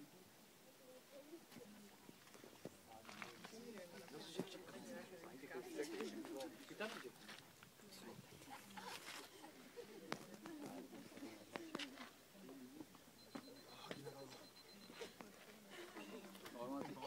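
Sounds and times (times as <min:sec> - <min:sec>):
distant people chattering: 0:00.0 - 0:17.0.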